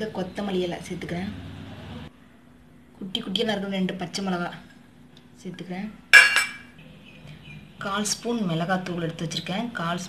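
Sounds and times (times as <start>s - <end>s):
metal kitchenware clinking: 6.1s - 6.8s.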